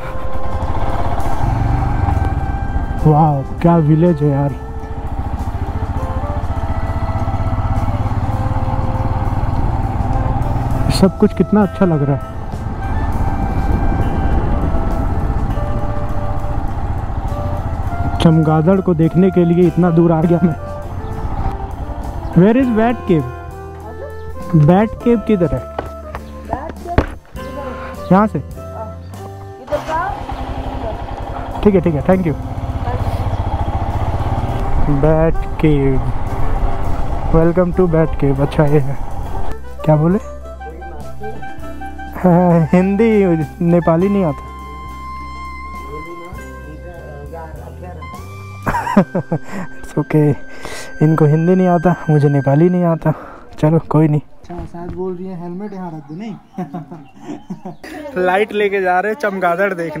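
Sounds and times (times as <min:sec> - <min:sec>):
motorcycle engine running: 0:00.0 - 0:51.8.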